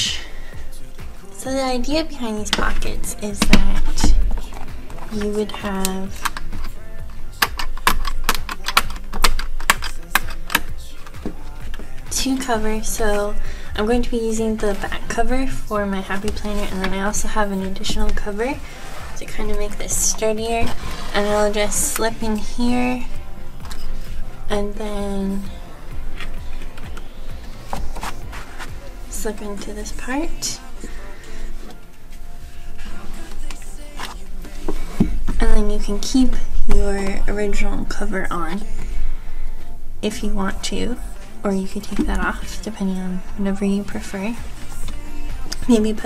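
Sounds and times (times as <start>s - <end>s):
pop music with drum beat: 0.0s - 46.0s
planner discs clicking and snapping: 7.4s - 12.0s
fabric and paper rustling: 20.5s - 22.8s, 26.1s - 29.0s, 30.3s - 35.4s.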